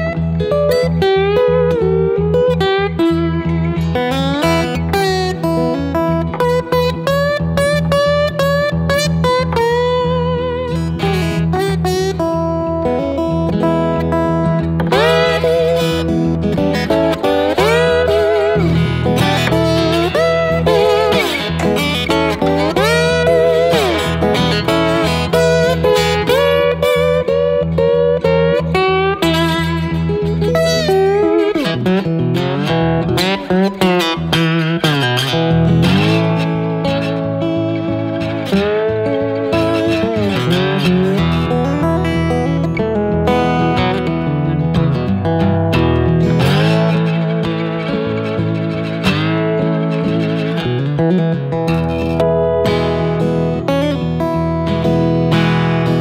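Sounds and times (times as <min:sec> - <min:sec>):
fingerpicked slide guitar: 0:00.0 - 0:56.0.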